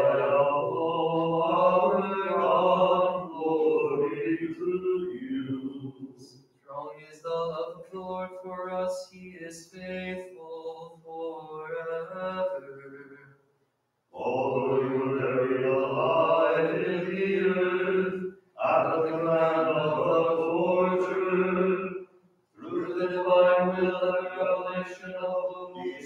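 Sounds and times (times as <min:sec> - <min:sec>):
voices singing a chant: 0:00.0 - 0:08.2, 0:14.2 - 0:22.0, 0:22.6 - 0:26.0.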